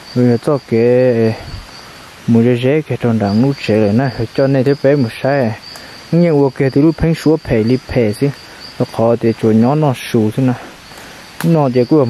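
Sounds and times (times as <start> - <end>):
insects droning: 0.0 - 12.0
man speaking: 0.2 - 1.6, 2.3 - 10.8, 11.4 - 12.0.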